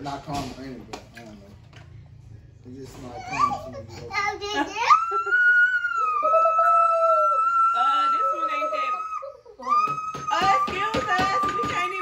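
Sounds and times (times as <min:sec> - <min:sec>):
child squealing: 0:04.8 - 0:10.7.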